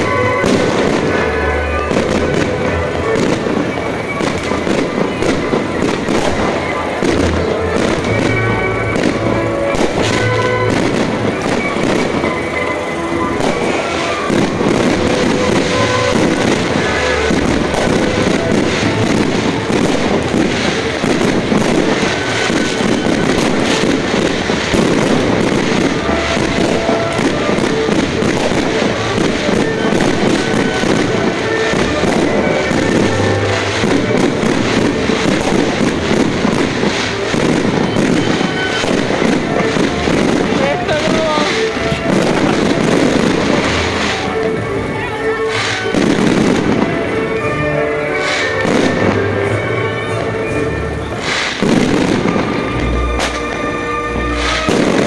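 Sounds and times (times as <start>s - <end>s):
fireworks crackling and popping: 0.0s - 55.0s
music playing: 0.0s - 55.0s.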